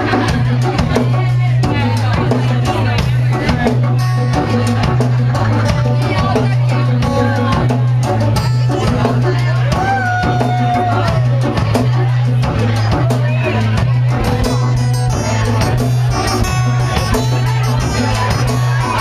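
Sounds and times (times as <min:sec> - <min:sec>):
drum kit beat: 0:00.0 - 0:19.0
heavy bass line: 0:00.0 - 0:19.0
keyboard: 0:00.0 - 0:19.0
live band playing: 0:00.0 - 0:19.0
strummed acoustic guitar: 0:00.0 - 0:19.0.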